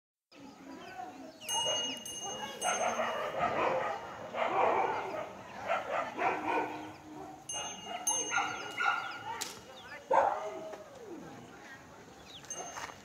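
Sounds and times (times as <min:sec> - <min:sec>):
dog barking: 0:01.5 - 0:09.4, 0:10.1 - 0:10.7.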